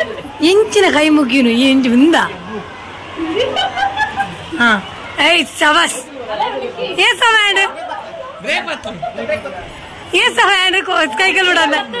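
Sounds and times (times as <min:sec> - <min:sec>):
people chattering in high voices: 0:00.0 - 0:12.0.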